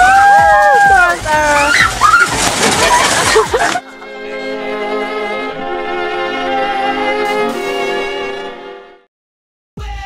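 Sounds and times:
voices: 0.6s - 3.8s
violin sustained notes: 3.8s - 8.8s.

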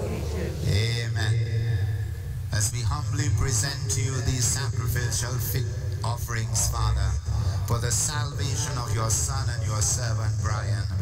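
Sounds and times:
man chanting a prayer: 0.0s - 11.0s.

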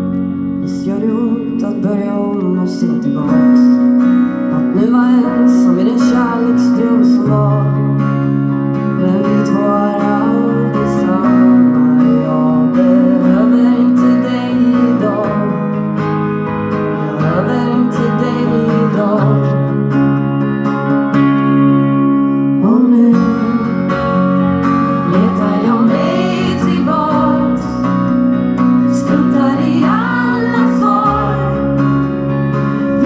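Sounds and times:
live pop song on guitars: 0.0s - 33.0s
woman singing: 12.4s - 15.6s, 25.1s - 27.9s, 28.9s - 31.8s.

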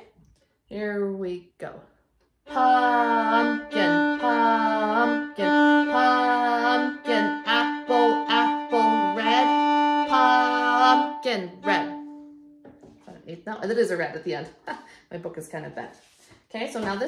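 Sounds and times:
woman chanting: 2.5s - 12.0s
violin bowed: 2.5s - 12.7s.

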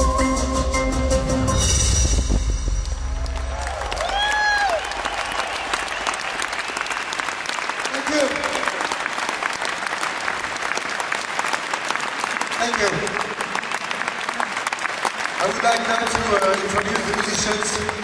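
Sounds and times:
audience applauding: 2.9s - 18.0s.

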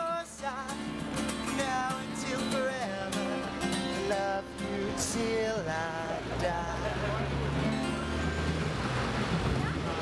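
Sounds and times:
low engine hum: 4.0s - 10.0s
people talking: 6.4s - 7.6s, 9.3s - 10.0s.

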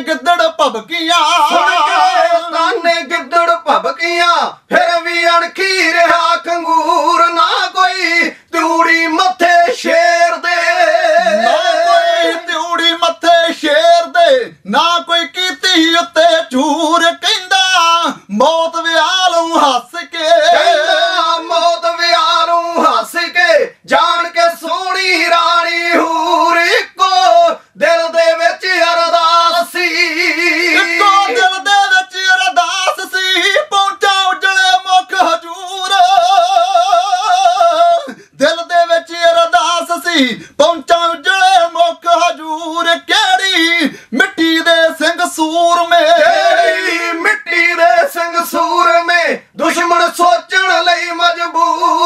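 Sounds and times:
men singing unaccompanied: 0.0s - 52.0s.

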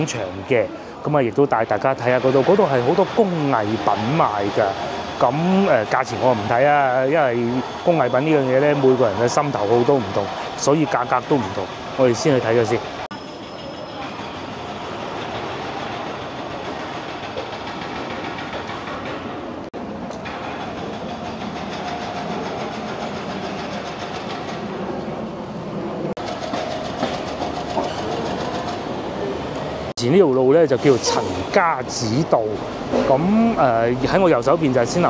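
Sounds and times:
city street traffic: 0.0s - 35.0s.

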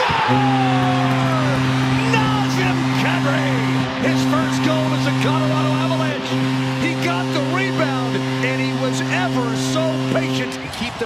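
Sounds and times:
crowd cheering: 0.0s - 11.0s
goal horn low blast: 0.0s - 11.0s.

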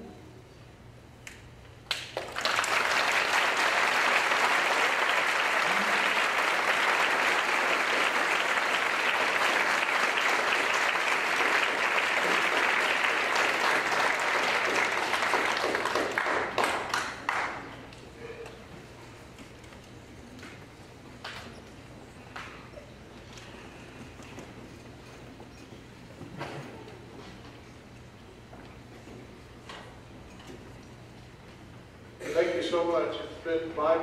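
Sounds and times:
audience applauding: 1.9s - 18.0s.

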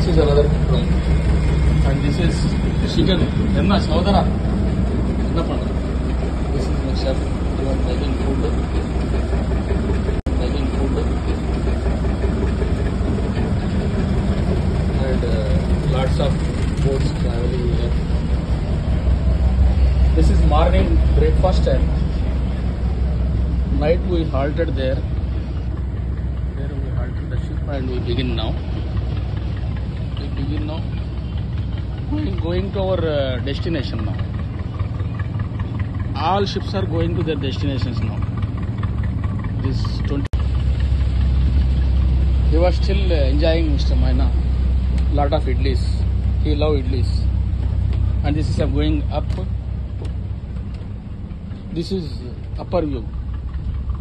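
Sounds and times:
boat engine humming: 0.0s - 54.0s.

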